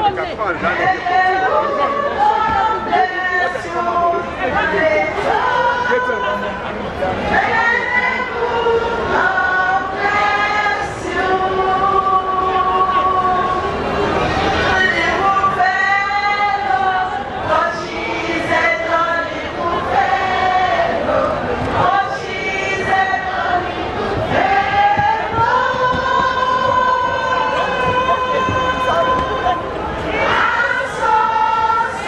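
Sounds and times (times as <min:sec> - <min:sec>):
choir singing held notes: 0:07.3 - 0:32.0.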